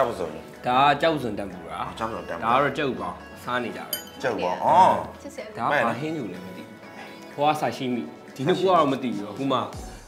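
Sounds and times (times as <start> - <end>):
background music: 0.0 - 10.0
glass tableware clink: 3.9 - 4.4.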